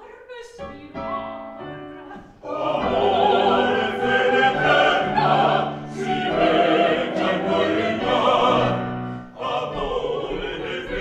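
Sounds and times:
woman singing opera: 0.0 - 1.3
piano accompaniment: 0.6 - 11.0.

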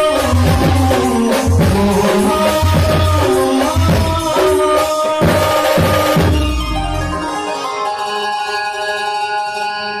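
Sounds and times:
live band sustained chord: 6.2 - 10.0.

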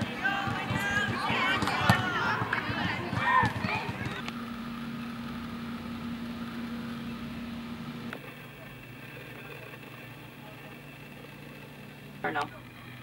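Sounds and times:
young people calling out: 0.0 - 4.3
steady low hum: 0.0 - 13.0.

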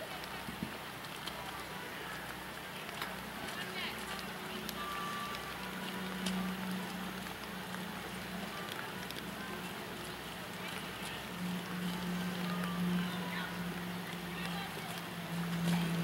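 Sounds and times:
faint clicks: 0.0 - 16.0
indistinct faint voices: 0.0 - 16.0.

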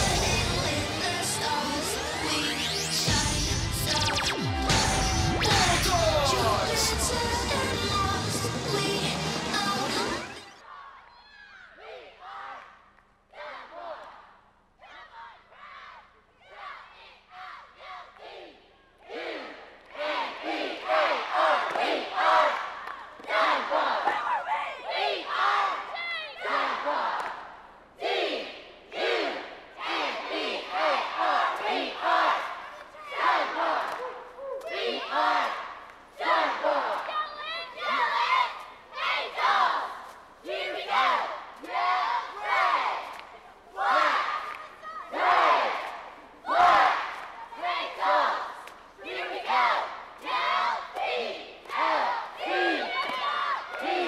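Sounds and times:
cheerleaders yelling in unison: 4.6 - 14.1, 14.8 - 27.4, 28.0 - 54.0.

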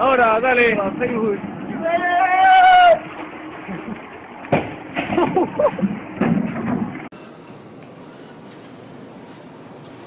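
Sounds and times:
steady background noise: 0.0 - 10.0
people shouting: 1.8 - 3.0.

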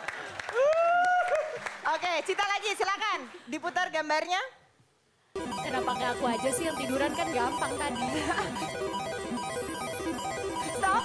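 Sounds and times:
game show music cue: 5.4 - 11.0.

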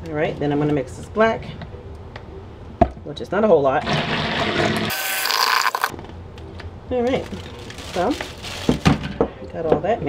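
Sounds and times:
stick blender running: 3.8 - 5.9.

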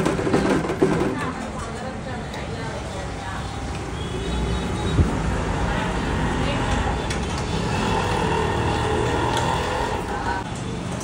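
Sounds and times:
roadside traffic noise: 0.0 - 11.0.

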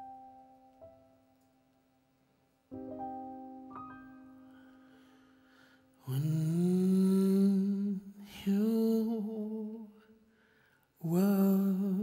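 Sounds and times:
keyboard chord: 0.0 - 1.5, 2.7 - 6.5
man singing wordless notes: 6.0 - 10.2, 11.0 - 12.0.

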